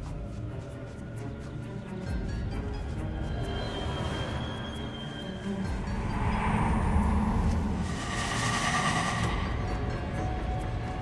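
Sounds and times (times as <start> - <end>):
ominous low rumbling drone: 5.4 - 11.0.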